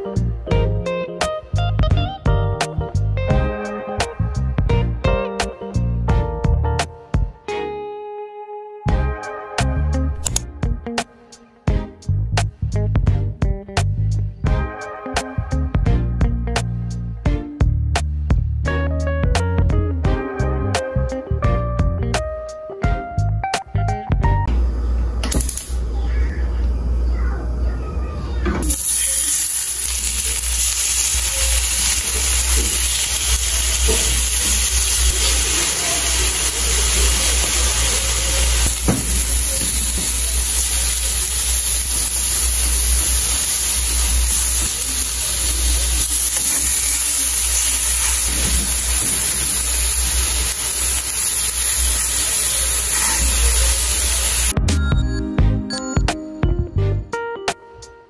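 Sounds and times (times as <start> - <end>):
chicken sizzling in a pan: 28.7 - 54.5.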